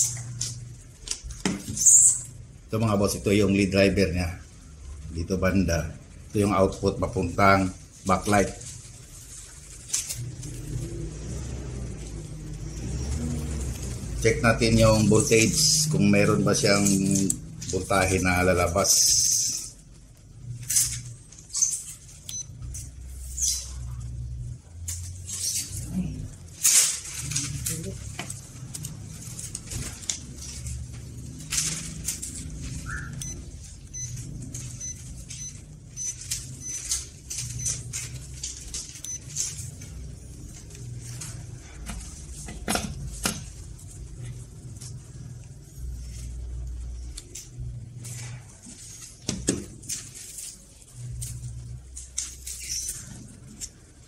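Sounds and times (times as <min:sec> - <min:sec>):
low humming bass: 0:02.1 - 0:54.0.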